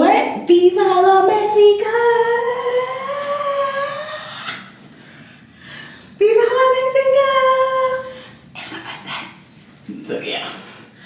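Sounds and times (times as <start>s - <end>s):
woman singing a high note: 0.5s - 4.4s.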